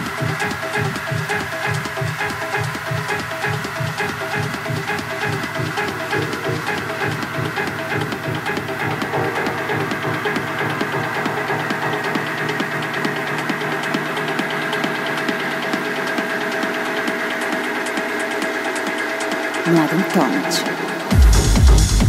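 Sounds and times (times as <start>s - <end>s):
techno kick drum: 0.0s - 22.0s.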